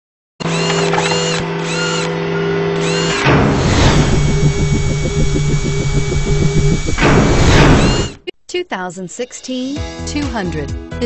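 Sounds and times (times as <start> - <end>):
rattling motor-like buzz: 0.4 - 8.2
steady electronic hum: 0.8 - 8.2
whoosh: 3.2 - 8.2
high arching electronic chirps: 3.9 - 8.2.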